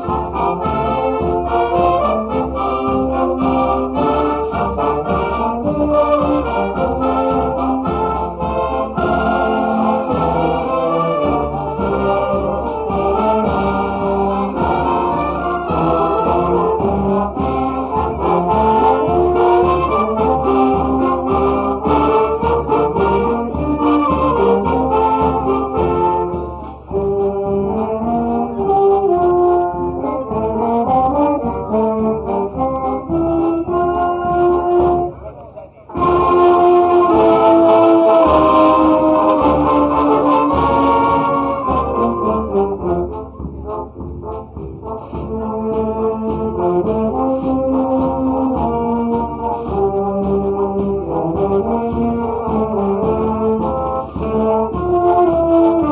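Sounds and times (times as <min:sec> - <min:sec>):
wind band playing: 0:00.0 - 0:55.9.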